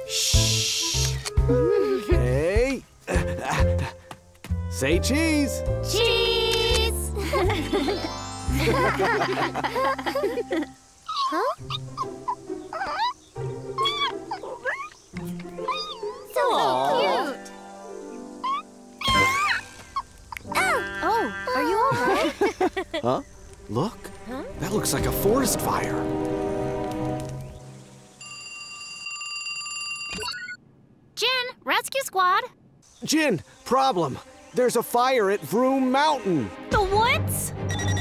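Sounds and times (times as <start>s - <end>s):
light background music: 0.0s - 28.2s, 33.7s - 38.0s
held music chord: 4.8s - 10.8s
cartoon chipmunk squeaky chirps: 11.1s - 13.2s, 13.8s - 17.1s, 18.4s - 21.9s, 37.6s - 38.0s
cartoon alarm ringing tone: 37.6s - 38.0s.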